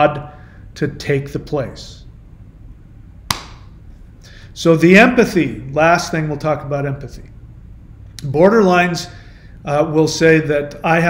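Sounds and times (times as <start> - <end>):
sharp click: 3.3 - 3.7.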